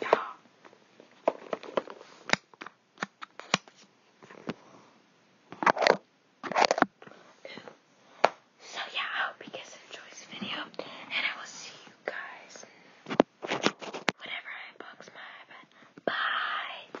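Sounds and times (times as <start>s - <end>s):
girl whispering: 0.0s - 0.4s, 8.6s - 12.7s, 14.2s - 17.0s.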